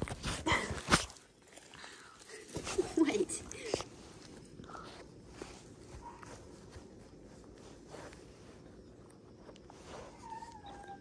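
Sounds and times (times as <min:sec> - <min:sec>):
puppy whining: 0:09.8 - 0:11.0.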